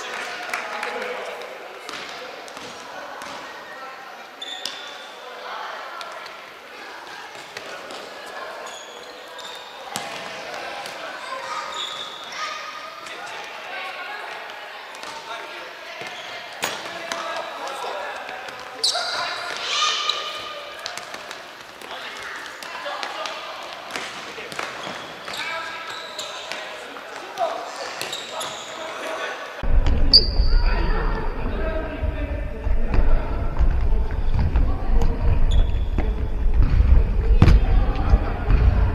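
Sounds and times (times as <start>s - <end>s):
shoe squeaks: 4.4s - 5.2s, 8.6s - 9.8s, 11.6s - 12.3s, 18.8s - 19.4s, 24.7s - 26.6s, 27.9s - 29.0s, 30.1s - 30.7s
steady low rumble: 29.6s - 38.9s
ball kicks and bounces: 32.6s - 38.9s.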